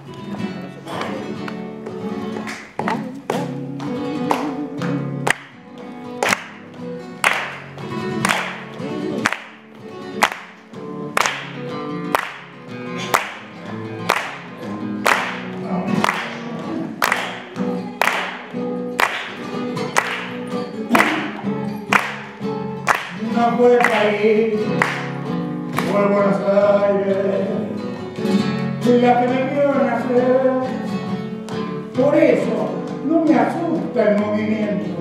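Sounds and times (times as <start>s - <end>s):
flamenco guitar strumming: 0.0s - 35.0s
hand-clapping: 0.9s - 26.2s, 31.4s - 31.8s
person singing: 2.2s - 5.5s, 8.0s - 9.5s, 15.5s - 18.7s, 19.3s - 22.3s, 23.0s - 31.2s, 31.9s - 35.0s.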